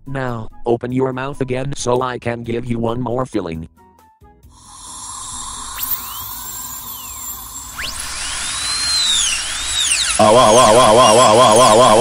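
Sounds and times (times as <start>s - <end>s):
dental drill whining: 4.6s - 12.0s.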